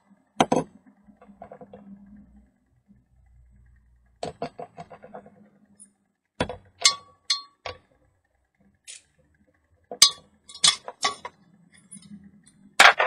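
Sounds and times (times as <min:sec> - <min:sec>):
glass tubes clinking and knocking: 0:06.4 - 0:07.9, 0:09.9 - 0:12.2.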